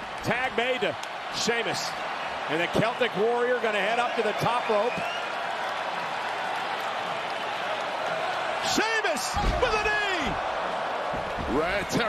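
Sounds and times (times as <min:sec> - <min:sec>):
arena crowd cheering: 0:00.0 - 0:12.0
crowd clapping: 0:00.0 - 0:12.0.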